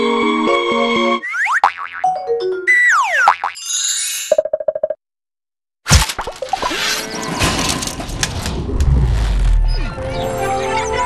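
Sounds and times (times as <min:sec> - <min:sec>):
cartoon boings: 0:01.2 - 0:05.0.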